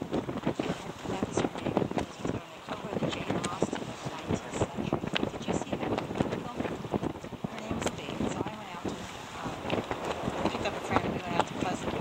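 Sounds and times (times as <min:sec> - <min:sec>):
wind buffeting microphone: 0:00.0 - 0:12.0
indistinct talking: 0:00.6 - 0:12.0.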